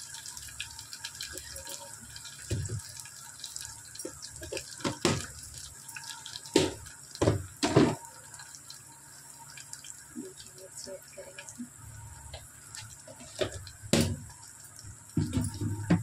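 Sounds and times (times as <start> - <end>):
oil sizzling and crackling: 0.0 - 16.0
sharp pops in pan: 6.6 - 8.0.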